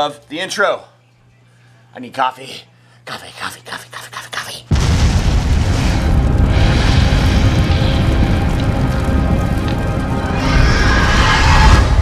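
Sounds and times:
loud dense music: 4.7s - 12.0s.

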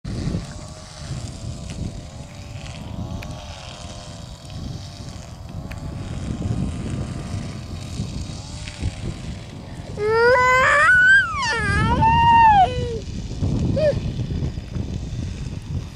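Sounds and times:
engine drone wavering in pitch: 0.1s - 15.9s
wind rumble on microphone: 0.1s - 15.9s.

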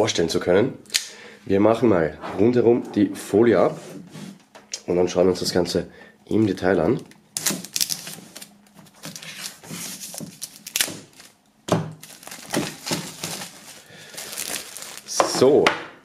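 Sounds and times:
plastic wrap crinkling: 6.9s - 15.5s
knife slitting plastic wrap: 7.4s - 11.4s, 12.0s - 15.2s.

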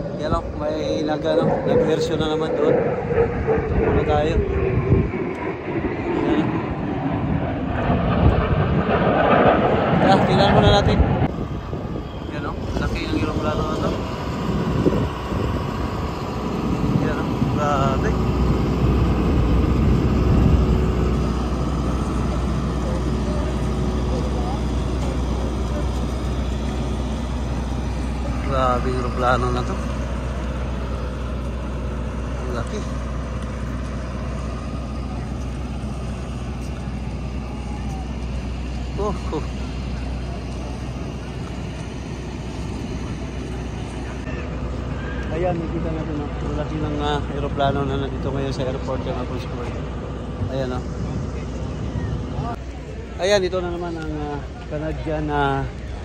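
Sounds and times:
generator engine droning: 0.0s - 56.0s
faint voices: 21.0s - 31.5s, 33.8s - 56.0s.

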